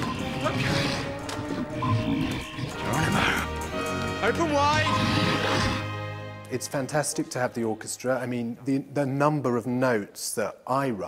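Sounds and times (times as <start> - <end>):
dramatic orchestral music: 0.0 - 8.3
low creature growl: 4.8 - 5.9.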